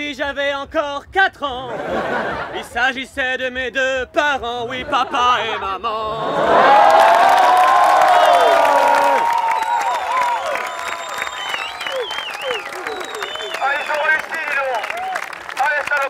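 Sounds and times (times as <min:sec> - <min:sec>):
audience applauding: 0:06.6 - 0:16.0.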